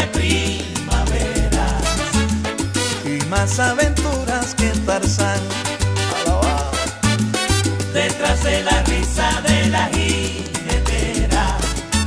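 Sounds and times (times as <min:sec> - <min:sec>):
deep bass line: 0:00.0 - 0:12.0
salsa music: 0:00.0 - 0:12.0.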